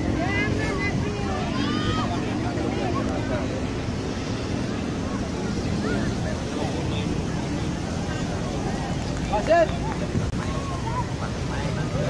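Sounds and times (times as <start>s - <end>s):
people shouting: 1.3s - 2.4s.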